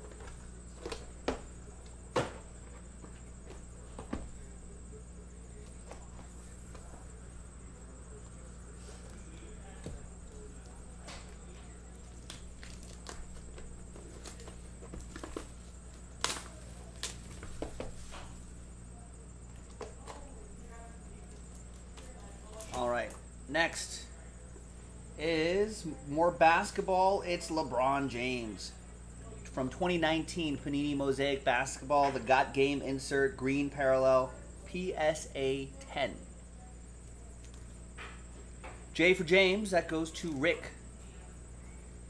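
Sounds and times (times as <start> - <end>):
low electrical hum: 0.0 - 42.0
plastic shrink wrap crinkling: 11.9 - 17.7.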